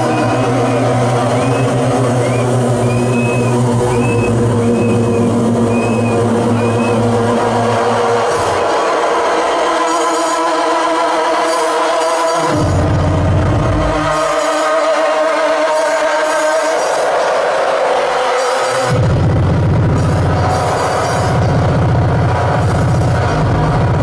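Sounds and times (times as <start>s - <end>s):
held bass tone: 0.0s - 8.6s, 12.5s - 14.2s, 18.9s - 24.0s.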